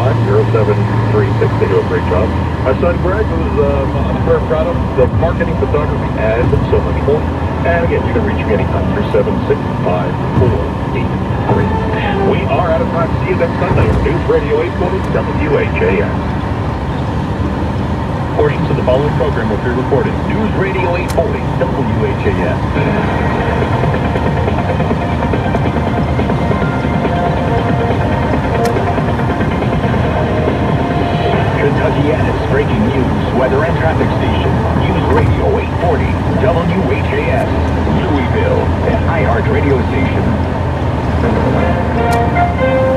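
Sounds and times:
radio voice from car speakers: 0:00.0 - 0:16.4, 0:18.3 - 0:24.4, 0:28.4 - 0:40.5, 0:41.2 - 0:42.0
road and tyre rumble: 0:00.0 - 0:42.9.

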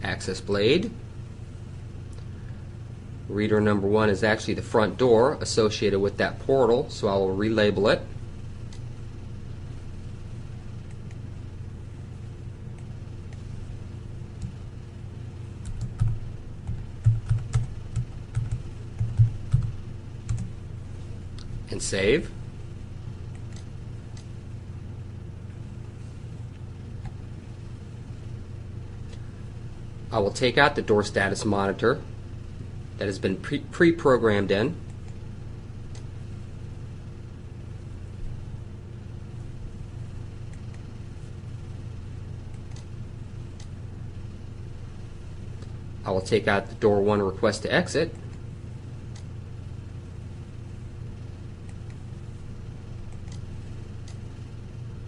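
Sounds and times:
faint constant tone: 0:00.0 - 0:55.0
low electrical hum: 0:00.0 - 0:55.0
keyboard typing: 0:15.6 - 0:19.7, 0:20.3 - 0:20.5.

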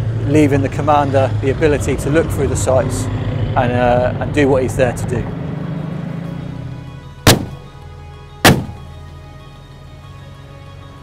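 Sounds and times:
background music: 0:05.2 - 0:11.0
loud bangs: 0:07.3 - 0:07.7, 0:08.4 - 0:08.9.

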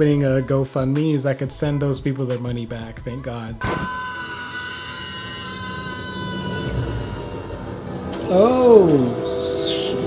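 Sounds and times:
woman screaming: 0:04.0 - 0:07.6
low rumbling score: 0:05.2 - 0:10.0.

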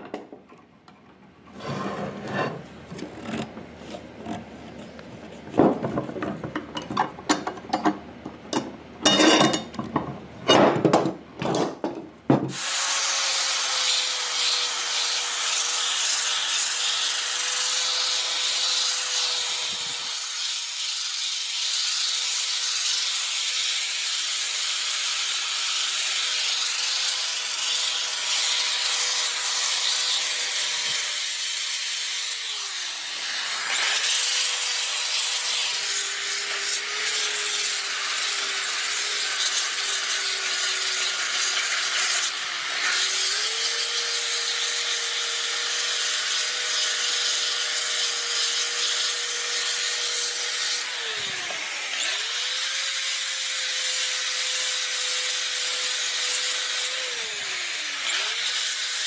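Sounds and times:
hand tool scraping wood: 0:01.5 - 0:06.8
drill sanding disc rasping: 0:12.5 - 0:59.0.

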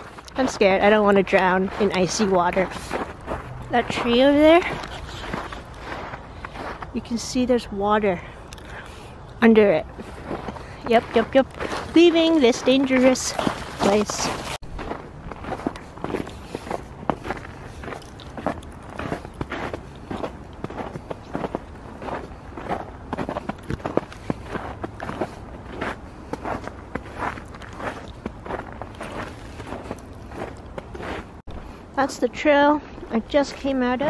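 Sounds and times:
footsteps in snow: 0:00.0 - 0:08.3, 0:09.6 - 0:31.7.

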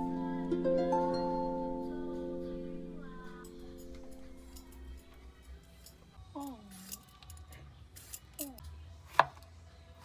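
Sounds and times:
knife chopping on plastic board: 0:09.1 - 0:09.4.

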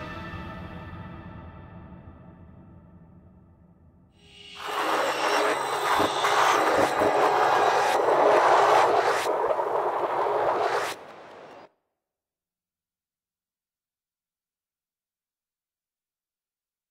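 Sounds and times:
loud rushing noise: 0:04.2 - 0:11.7.

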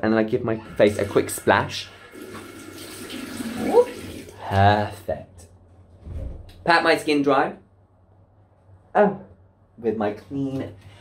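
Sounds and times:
tap water running into sink: 0:00.7 - 0:04.4.

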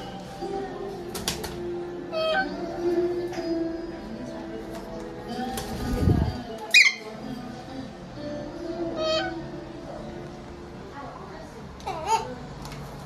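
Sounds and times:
music with held notes: 0:00.0 - 0:13.0
parakeet squawk: 0:06.7 - 0:07.1.

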